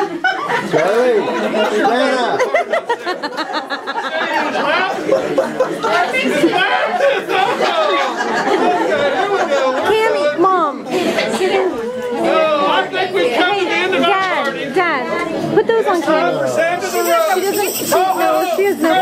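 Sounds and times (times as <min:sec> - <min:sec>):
people talking over one another: 0:00.7 - 0:19.0.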